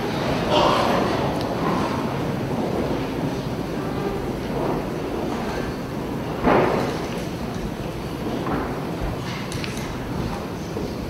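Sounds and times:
room noise rumble and rustle: 0.0 - 11.0.

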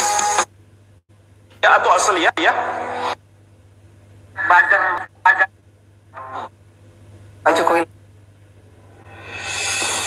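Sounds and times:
steady low hum: 0.4 - 10.0.

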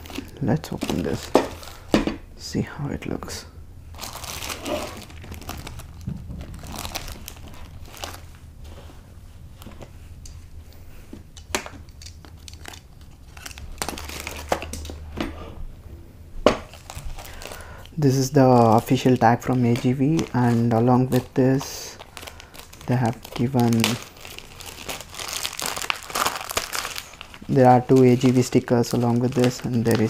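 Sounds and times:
plastic packaging crinkling: 0.0 - 2.0, 3.9 - 8.8, 11.3 - 15.0, 16.6 - 30.0.

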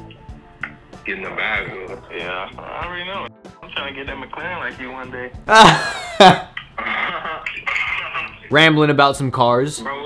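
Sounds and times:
man laughing loudly: 5.5 - 7.4
muffled voices over a phone: 6.8 - 8.5.

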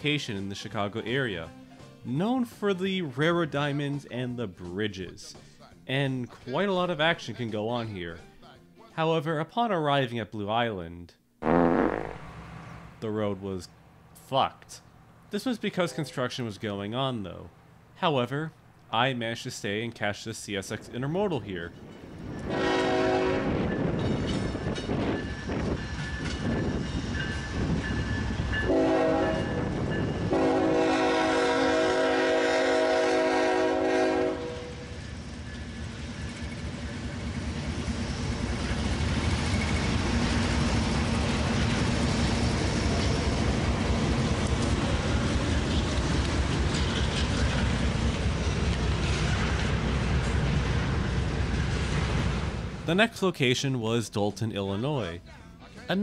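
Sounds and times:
train rumble with wheel clatter: 21.7 - 52.9
train horn blasts: 22.4 - 23.7, 28.6 - 35.0.

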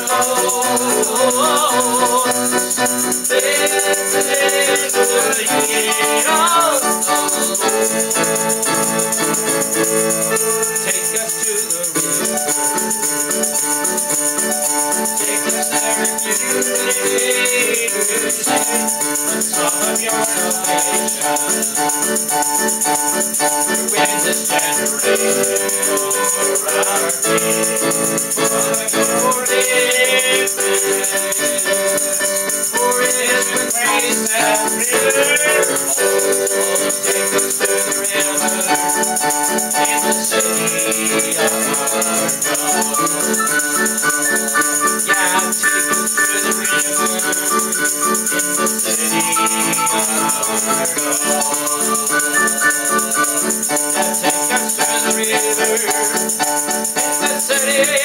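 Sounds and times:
digital piano keyboard: 0.0 - 58.0
man singing: 0.0 - 58.0
tambourine shaken: 0.0 - 58.0.

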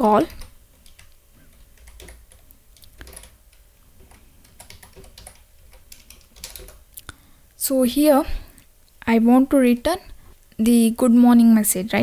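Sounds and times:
keyboard typing: 0.0 - 7.1.

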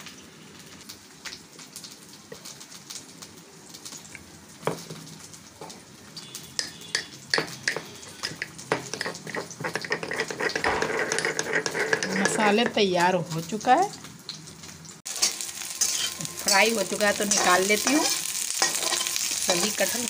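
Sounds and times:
frying oil sizzling: 0.0 - 20.0.

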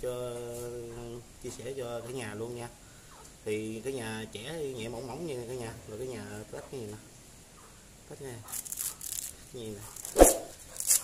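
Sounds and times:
coconut husk fibres tearing: 8.5 - 11.0
single sharp loud sound: 10.1 - 10.6.

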